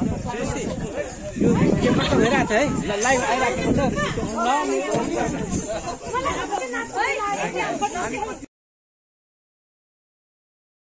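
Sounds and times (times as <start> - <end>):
overlapping voices chattering: 0.0 - 8.5.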